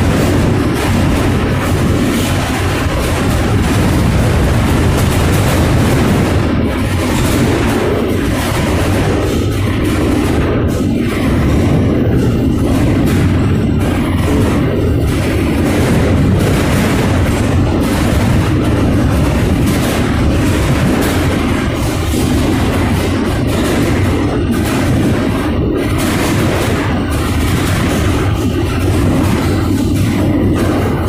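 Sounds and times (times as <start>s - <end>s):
rattling and knocking of car body: 0.0s - 31.0s
train car rumbling on track: 0.0s - 31.0s.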